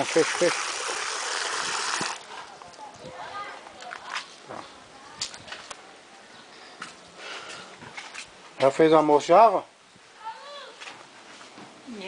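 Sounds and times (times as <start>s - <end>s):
water running and splashing: 0.0s - 2.6s.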